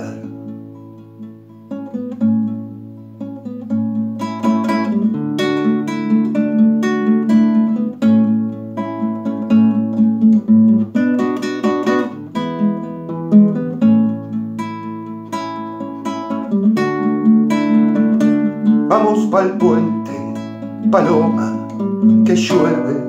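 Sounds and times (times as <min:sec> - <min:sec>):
classical guitar chords: 0:00.0 - 0:23.0.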